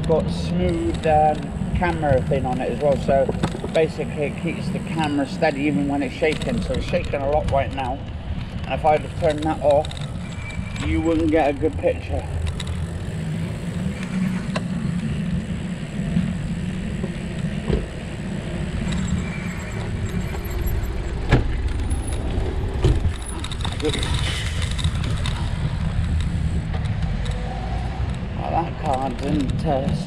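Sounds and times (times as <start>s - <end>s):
bicycle tyre rolling over paving: 0.1s - 28.1s.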